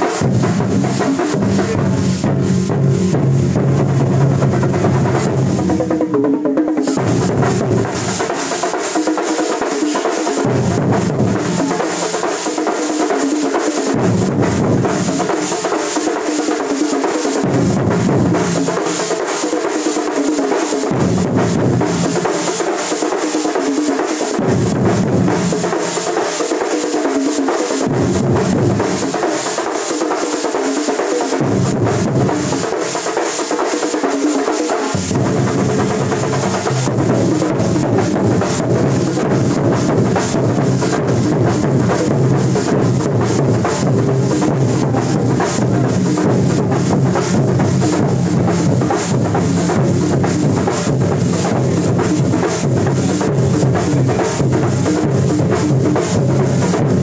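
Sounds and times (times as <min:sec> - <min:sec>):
drums beaten with sticks: 0:00.0 - 0:57.0
deep low drum strokes: 0:00.2 - 0:06.0, 0:35.0 - 0:57.0.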